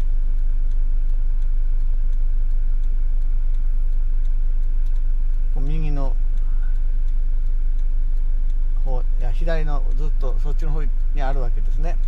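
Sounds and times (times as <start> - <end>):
faint ticks: 0.0 - 9.2.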